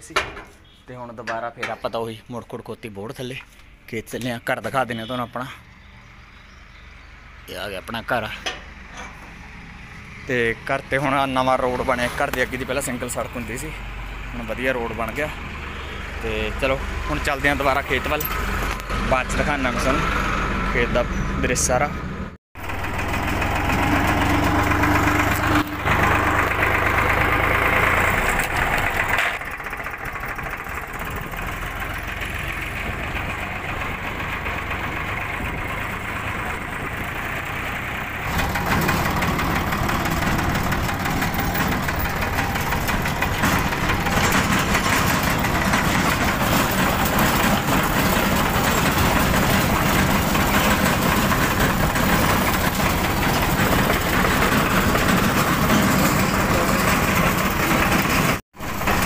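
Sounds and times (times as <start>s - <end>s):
tractor diesel engine running: 5.8s - 59.0s.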